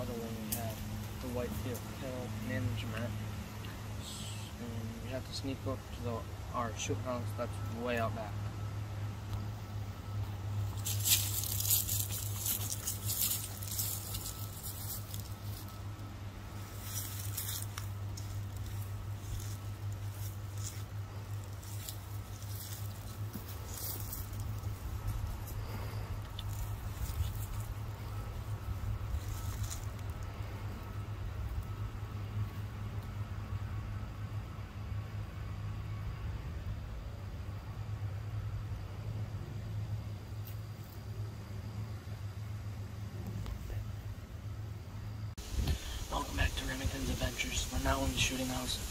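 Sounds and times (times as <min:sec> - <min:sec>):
steady low hum: 0:00.0 - 0:48.9
light rustling and crackling: 0:10.6 - 0:31.1.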